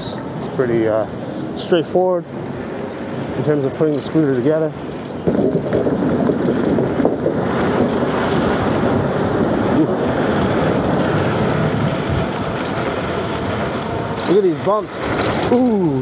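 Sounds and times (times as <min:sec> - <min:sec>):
scooter road noise: 0:00.0 - 0:16.0
wind rushing over microphone: 0:00.0 - 0:16.0.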